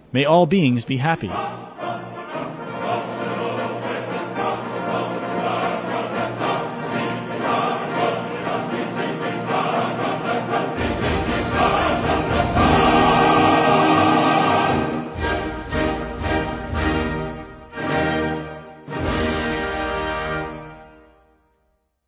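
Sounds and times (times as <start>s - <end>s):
choir singing: 1.2s - 21.0s
instrumental accompaniment: 1.3s - 21.4s.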